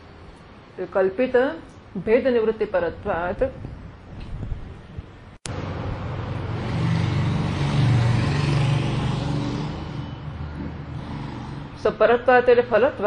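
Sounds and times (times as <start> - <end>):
vehicle passing by: 5.5 - 12.3.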